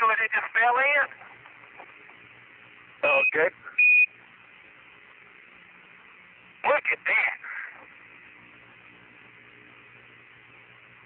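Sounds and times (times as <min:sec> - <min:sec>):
radio channel hiss: 0:00.0 - 0:11.0
short high beep: 0:03.1 - 0:04.1.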